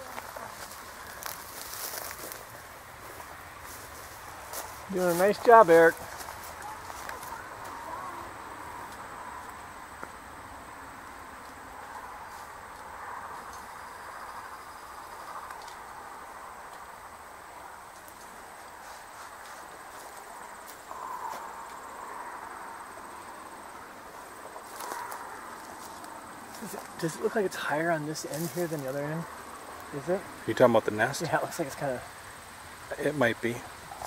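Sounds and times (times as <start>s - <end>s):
insect noise: 0.0s - 34.0s
thin high continuous tone: 0.0s - 34.0s.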